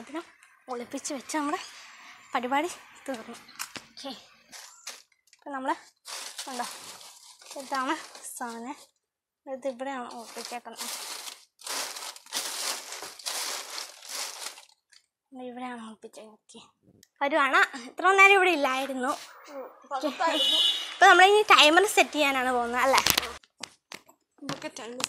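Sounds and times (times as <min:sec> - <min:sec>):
plastic wrappers crinkling: 0:04.5 - 0:09.0, 0:10.1 - 0:15.1, 0:21.8 - 0:23.8.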